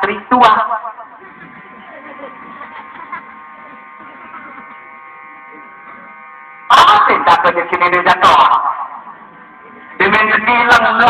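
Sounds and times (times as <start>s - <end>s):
electrical buzz with held tones: 0.0s - 11.0s
faint indistinct murmuring: 1.0s - 6.8s, 8.8s - 10.6s
loud speech: 6.7s - 11.0s.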